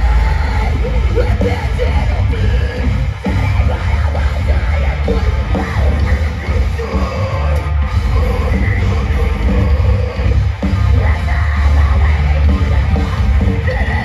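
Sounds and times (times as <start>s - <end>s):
distorted guitars: 0.0s - 14.0s
drums: 0.0s - 14.0s
heavy bass: 0.0s - 14.0s
rock band playing live: 0.0s - 14.0s.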